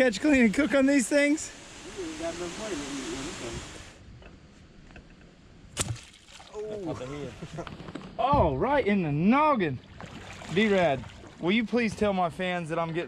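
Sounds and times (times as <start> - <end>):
steady hiss: 0.0 - 4.1.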